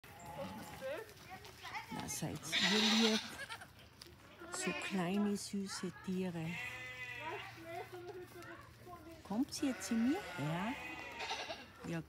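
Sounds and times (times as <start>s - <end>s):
goats bleating: 0.0s - 1.1s, 1.9s - 5.4s, 6.3s - 8.5s, 9.4s - 11.9s.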